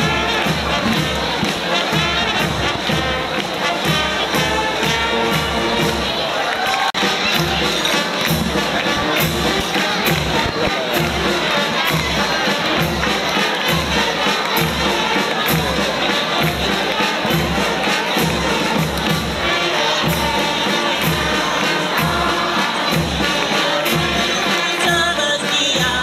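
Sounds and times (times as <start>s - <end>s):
bass drum beat: 0.0s - 6.2s, 7.0s - 26.0s
band music: 0.0s - 26.0s
crowd cheering: 0.0s - 26.0s.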